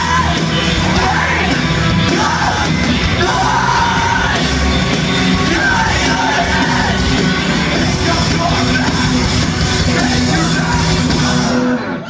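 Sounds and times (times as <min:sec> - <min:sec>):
hardcore band playing live: 0:00.0 - 0:12.0.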